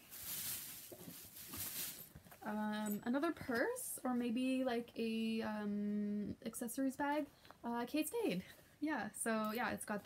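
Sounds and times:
bags and fabric rustling: 0.0s - 3.8s.

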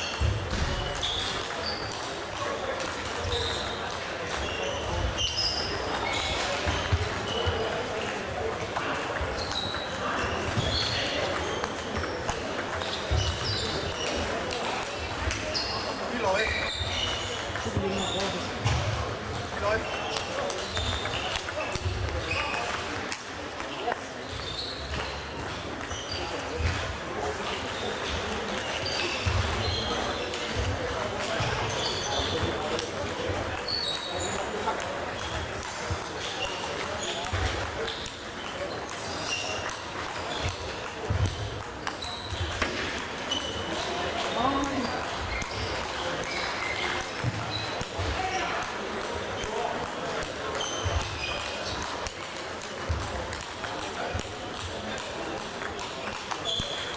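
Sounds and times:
shoe squeaks: 0.0s - 8.2s, 8.9s - 22.8s, 23.8s - 53.0s, 56.0s - 56.9s
indistinct chatter: 0.0s - 56.9s.

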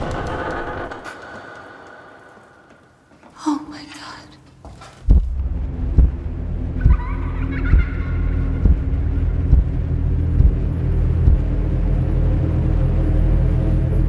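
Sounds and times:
deep rumbling drone: 5.1s - 14.0s.

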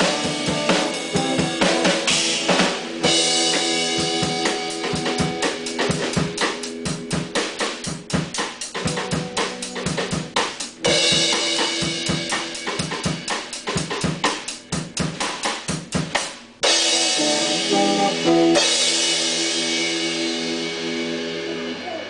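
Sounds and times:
held electric guitar chords: 0.0s - 8.2s, 16.6s - 22.0s
fast drum strokes: 0.0s - 22.0s
loud cymbal crash: 16.6s - 22.0s.

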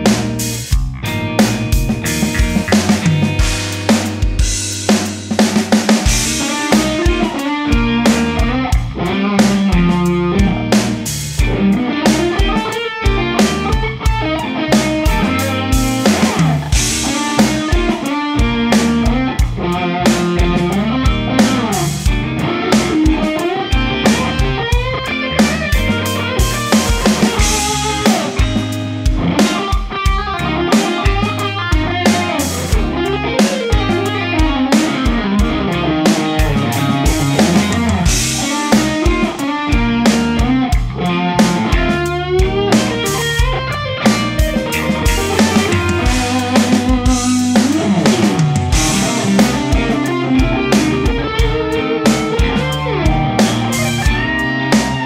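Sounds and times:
bass: 0.0s - 55.0s
drums: 0.0s - 55.0s
electric guitar solo: 6.2s - 55.0s.

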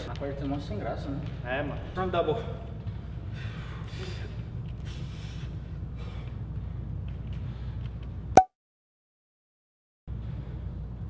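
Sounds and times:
low room hum: 0.0s - 8.3s
forceful breathing: 3.0s - 6.8s.

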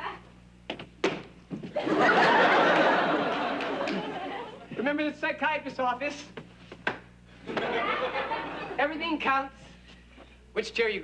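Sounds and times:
footsteps on stage floor: 0.6s - 1.8s, 6.3s - 7.7s
audience laughter: 1.8s - 4.7s, 7.4s - 8.8s.

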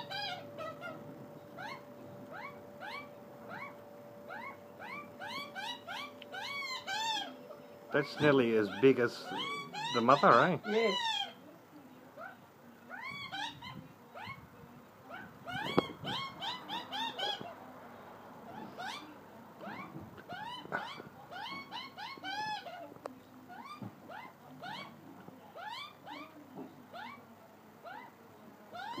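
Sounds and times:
magpies calling: 0.0s - 11.5s, 12.1s - 14.4s, 15.0s - 17.6s, 18.5s - 29.0s.

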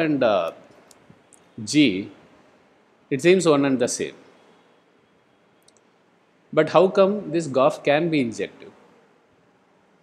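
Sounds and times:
faint click: 5.6s - 5.9s.

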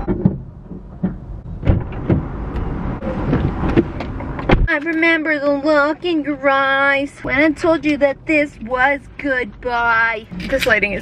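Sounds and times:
knocks and thumps in car: 0.0s - 4.8s.

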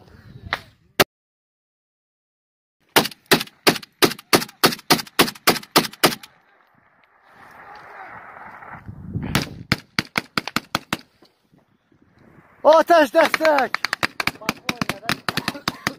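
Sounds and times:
rapid gunfire: 3.0s - 6.3s, 9.7s - 11.1s, 13.2s - 15.9s.

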